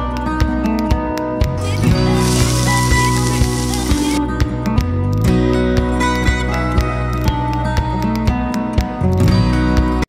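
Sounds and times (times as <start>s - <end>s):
background music: 0.0s - 10.0s
frying sizzle: 1.6s - 4.2s.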